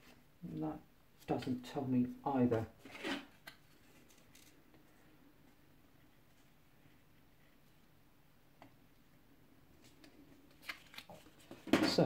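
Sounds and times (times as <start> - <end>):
earphones and packaging rustling: 2.8 - 5.0, 9.8 - 12.0.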